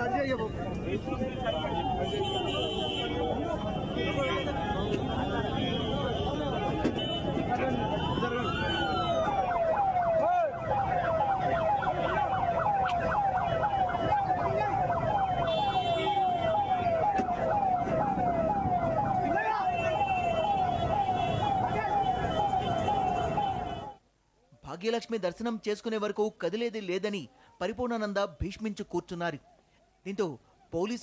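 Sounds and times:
crowd voices: 0.0s - 15.4s
police siren yelping: 0.0s - 24.0s.

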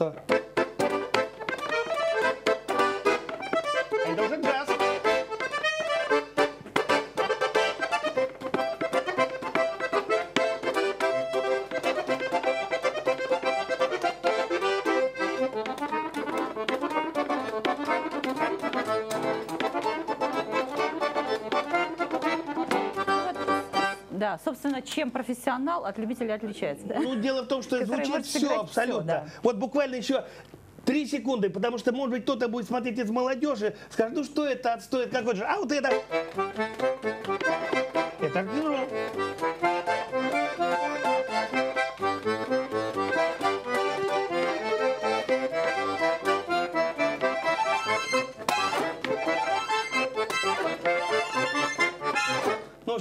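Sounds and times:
button accordion playing: 0.0s - 24.2s, 27.0s - 29.0s, 35.2s - 53.0s.

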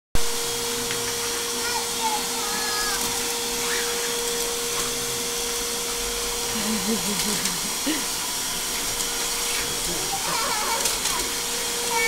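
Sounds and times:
shop vac running: 0.2s - 12.0s.

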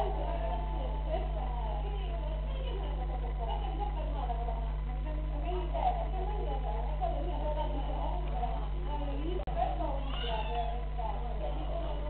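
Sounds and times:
low electrical hum: 0.0s - 12.0s
people talking: 0.0s - 12.0s.

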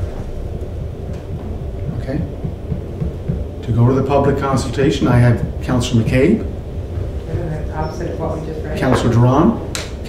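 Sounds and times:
low rumbling hum: 0.0s - 10.0s.

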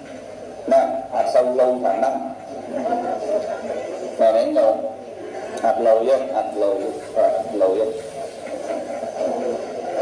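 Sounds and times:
man's voice over a microphone: 0.6s - 8.3s.

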